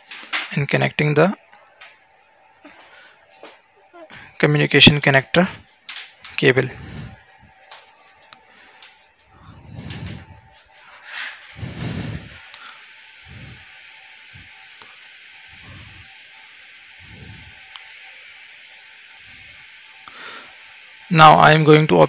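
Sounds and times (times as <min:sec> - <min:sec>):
faint steady hiss: 0:00.0 - 0:22.0.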